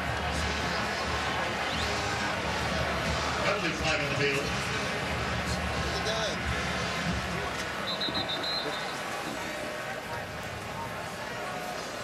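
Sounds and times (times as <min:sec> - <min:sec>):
crowd murmuring: 0:00.0 - 0:12.0.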